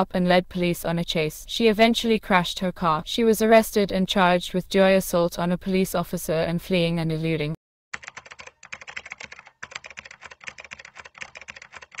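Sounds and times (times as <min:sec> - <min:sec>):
computer keyboard typing: 0:08.0 - 0:12.0.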